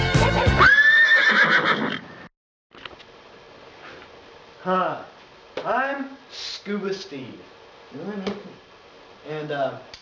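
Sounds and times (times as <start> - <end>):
horse whinny: 0.6 - 2.3.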